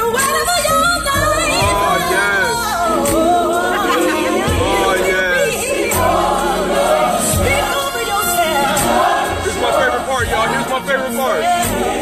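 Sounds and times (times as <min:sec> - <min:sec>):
gospel song with lead singer: 0:00.0 - 0:12.0.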